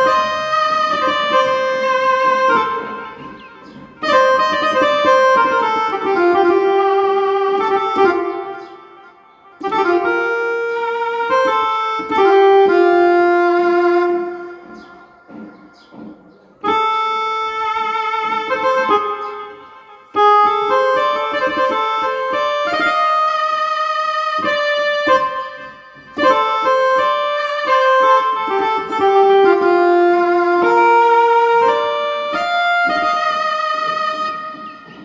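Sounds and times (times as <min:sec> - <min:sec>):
keyboard oboe melody: 0:00.0 - 0:35.0.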